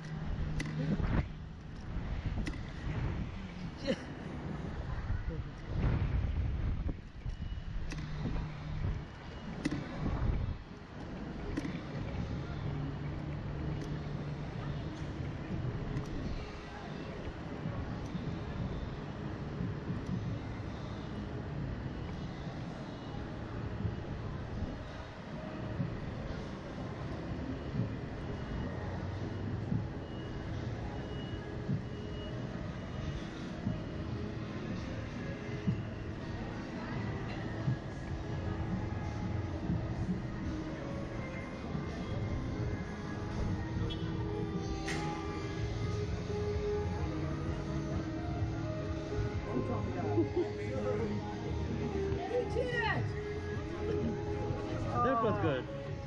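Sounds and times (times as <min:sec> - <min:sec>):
low rushing noise: 0:00.0 - 0:52.2
wind buffeting microphone: 0:00.2 - 0:12.3.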